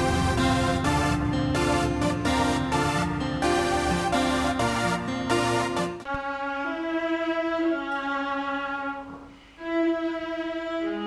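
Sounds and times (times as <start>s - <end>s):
bowed viola notes: 0.0s - 11.0s.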